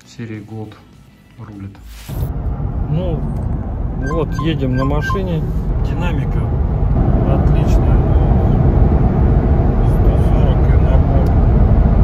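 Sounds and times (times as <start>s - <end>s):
car cabin engine and tyre rumble: 2.1s - 12.0s.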